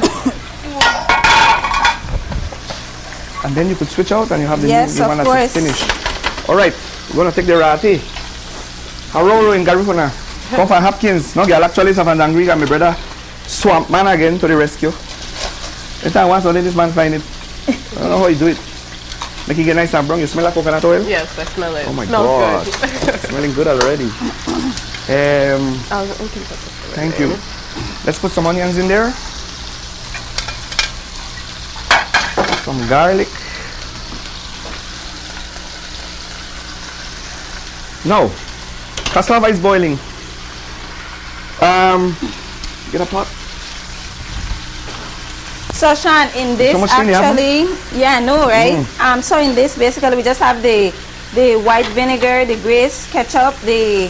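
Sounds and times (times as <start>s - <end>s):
fish sizzling in a pan: 0.0s - 54.0s
metal pots and pans clanking: 0.8s - 2.1s, 31.8s - 32.7s.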